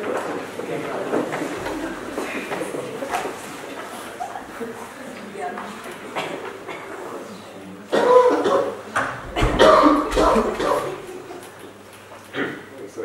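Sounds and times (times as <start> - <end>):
murmur of voices: 0.0 - 13.0
coughing: 6.1 - 7.0, 7.9 - 11.4.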